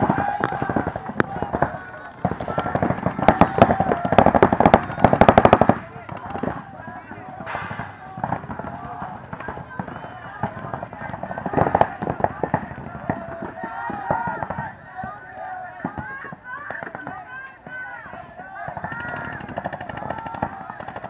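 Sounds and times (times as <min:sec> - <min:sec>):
people shouting: 0:00.0 - 0:21.0
paintball markers firing: 0:00.2 - 0:06.6, 0:18.7 - 0:21.0.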